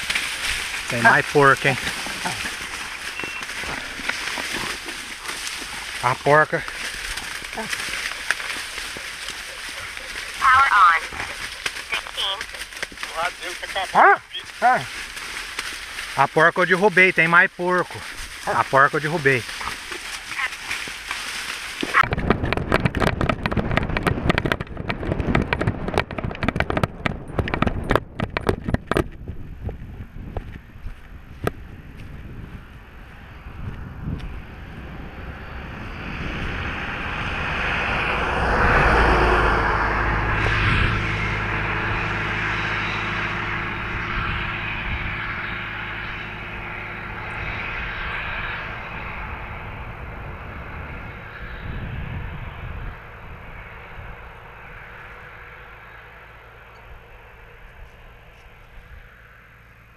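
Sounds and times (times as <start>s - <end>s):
engine and road noise: 0.0s - 59.9s.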